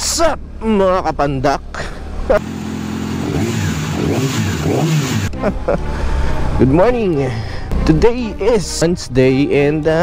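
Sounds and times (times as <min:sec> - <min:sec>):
wind and road noise: 0:00.0 - 0:10.0
scooter engine running: 0:01.7 - 0:05.3.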